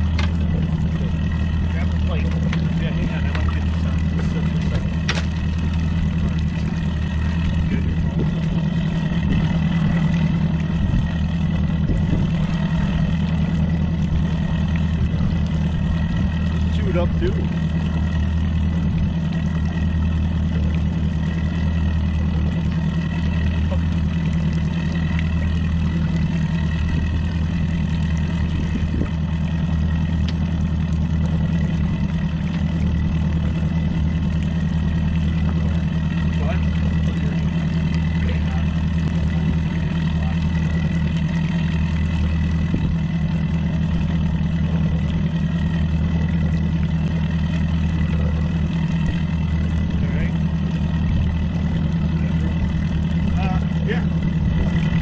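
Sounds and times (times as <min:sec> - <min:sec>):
outboard motor humming: 0:00.0 - 0:55.0.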